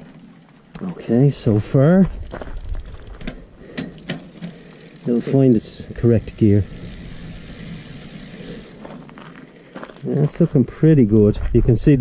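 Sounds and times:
bike wheel and chain whirring: 0:00.0 - 0:11.0.

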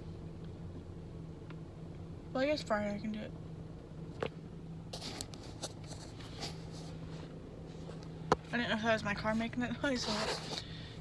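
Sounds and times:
car cabin hum: 0:00.0 - 0:11.0.

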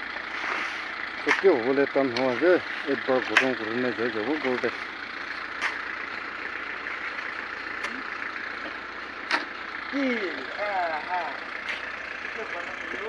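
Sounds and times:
road traffic noise: 0:00.0 - 0:13.0.

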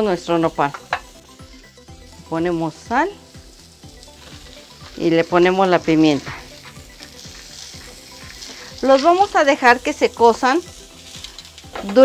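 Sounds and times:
cactus sizzling in frying pan: 0:00.0 - 0:12.0.

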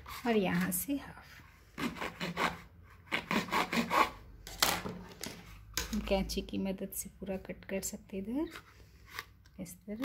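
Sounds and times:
knife sawing through cardboard: 0:00.0 - 0:00.7, 0:01.3 - 0:04.2.

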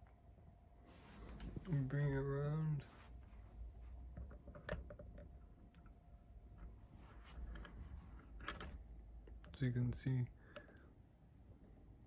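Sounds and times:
person speaking: 0:01.5 - 0:03.2, 0:09.3 - 0:10.5.

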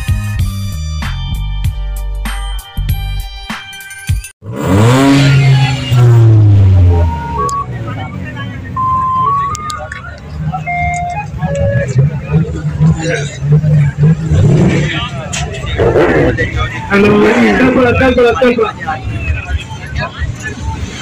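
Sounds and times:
background music: 0:00.0 - 0:04.8
car engine revving: 0:04.4 - 0:21.0
rising beeping tones: 0:05.2 - 0:08.1, 0:08.7 - 0:14.3
background voices: 0:06.9 - 0:21.0.

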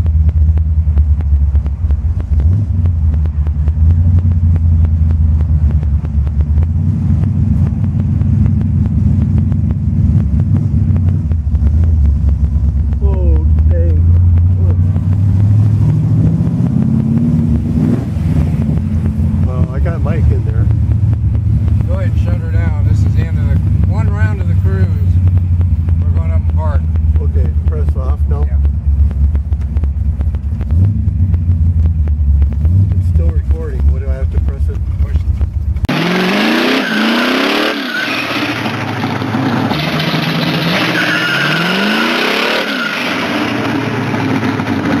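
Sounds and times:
car engine rumbling: 0:00.0 - 0:45.0
engine revving: 0:00.0 - 0:45.0
voices: 0:19.4 - 0:20.7, 0:25.9 - 0:28.7.

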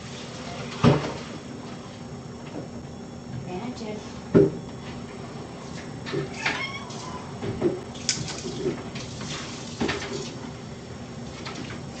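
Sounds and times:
cat meowing: 0:06.3 - 0:07.3.

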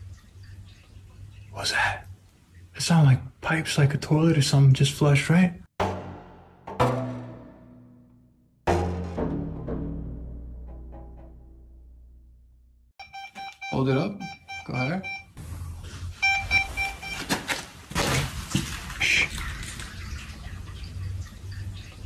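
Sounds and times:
water rushing in pipes: 0:00.0 - 0:04.6, 0:17.7 - 0:22.0
deep music hit: 0:05.8 - 0:12.7
meter beeping: 0:13.0 - 0:15.4, 0:16.2 - 0:17.3.

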